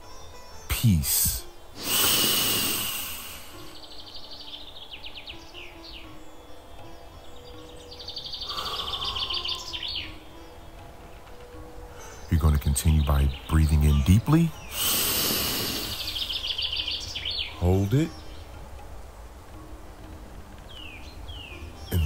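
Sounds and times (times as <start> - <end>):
bird song trills and chirps: 0.0 - 22.0
soft held music notes: 0.0 - 22.0.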